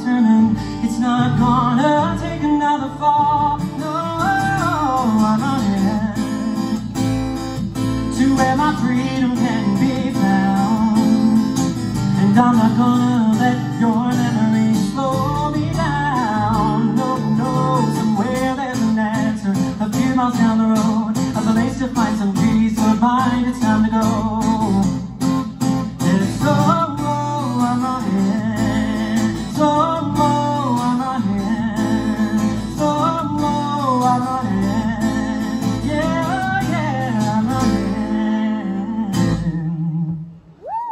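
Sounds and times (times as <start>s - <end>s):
man singing: 0.0s - 7.0s, 8.0s - 25.2s, 25.8s - 40.4s
strummed acoustic guitar: 0.0s - 40.2s.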